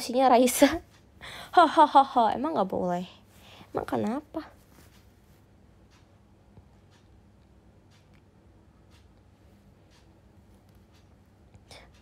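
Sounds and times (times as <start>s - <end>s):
faint ticks: 5.8s - 12.0s.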